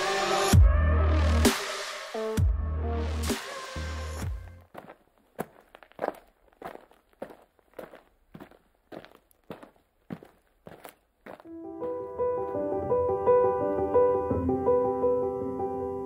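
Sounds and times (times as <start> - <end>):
electronic music: 0.0 - 4.6
footsteps on snow: 4.6 - 12.6
piano music: 11.5 - 16.0.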